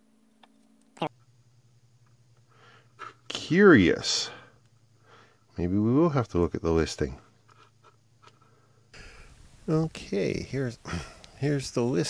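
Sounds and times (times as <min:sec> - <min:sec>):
faint clicks and scrapes: 0:07.3 - 0:08.5.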